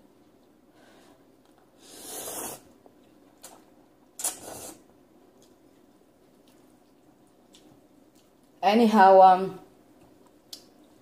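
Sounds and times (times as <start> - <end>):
wet noodle slurps: 1.8 - 2.7, 4.2 - 4.9.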